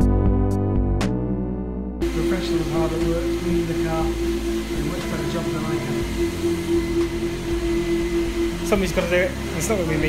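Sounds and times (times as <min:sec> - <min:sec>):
steady machine hum: 0:02.0 - 0:10.0.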